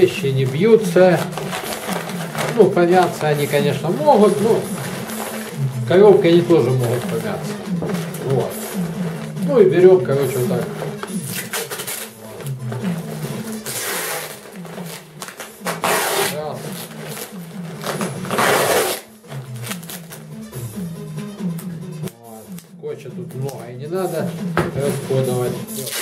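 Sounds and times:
background music with low bass: 0:00.0 - 0:26.0
packing tape pulled off dispenser: 0:11.0 - 0:12.3, 0:13.5 - 0:20.2, 0:25.7 - 0:26.0.

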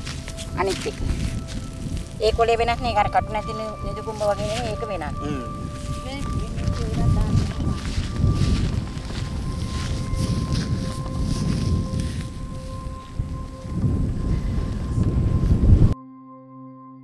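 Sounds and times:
wind buffeting microphone: 0:00.0 - 0:16.0
faint steady high tone: 0:00.0 - 0:17.0.

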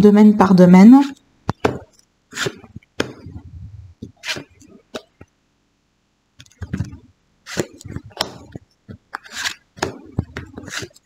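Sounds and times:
cards sliding rustle: 0:01.8 - 0:03.4, 0:04.0 - 0:05.3, 0:06.4 - 0:11.0.

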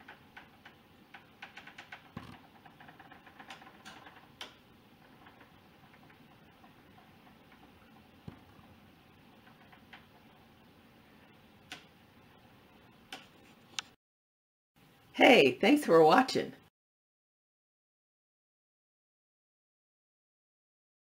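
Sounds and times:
small clicks and ticks: 0:00.0 - 0:12.0.

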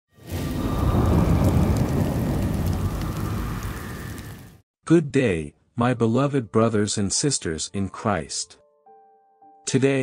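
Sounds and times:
deep rolling rumble: 0:00.2 - 0:04.6.

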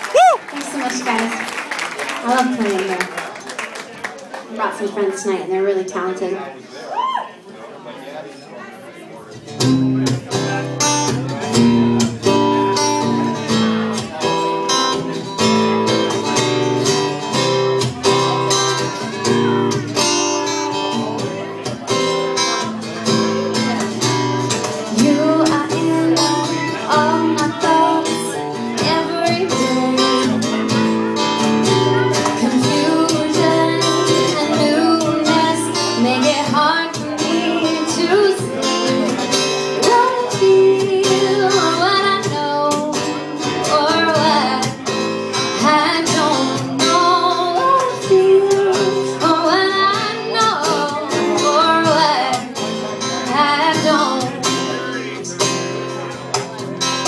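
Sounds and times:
strummed acoustic guitar: 0:09.3 - 0:57.0
woman singing: 0:24.9 - 0:30.6, 0:32.2 - 0:39.2, 0:39.8 - 0:44.8, 0:45.5 - 0:52.5, 0:53.2 - 0:54.5.

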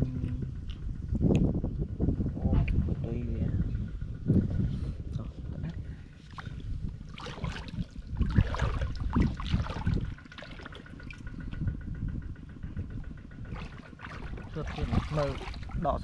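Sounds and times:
water splashing and sloshing: 0:05.6 - 0:12.0, 0:12.6 - 0:16.0.

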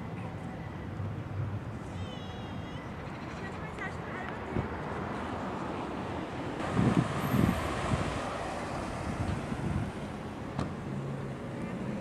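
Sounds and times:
traffic hiss: 0:00.0 - 0:12.0
wind buffeting microphone: 0:06.6 - 0:10.4.

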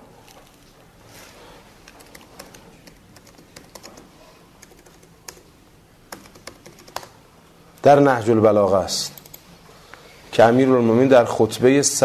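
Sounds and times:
man talking: 0:10.3 - 0:12.0.

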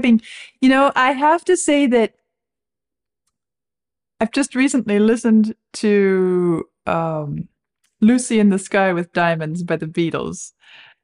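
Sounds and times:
woman speaking: 0:00.0 - 0:02.2, 0:04.2 - 0:10.6.

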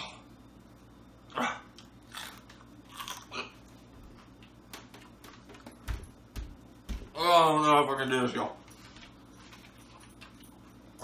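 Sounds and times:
peppers being bitten and chewed: 0:01.7 - 0:05.2.

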